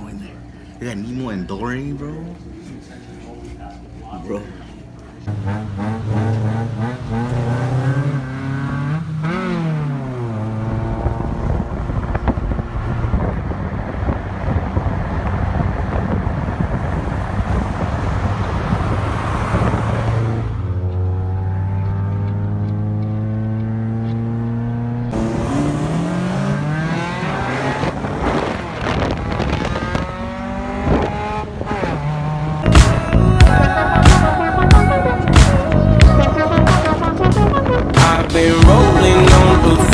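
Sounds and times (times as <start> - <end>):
road noise: 0.0 - 39.9
car engine revving: 5.2 - 39.9
music with sharp beats: 32.6 - 39.9.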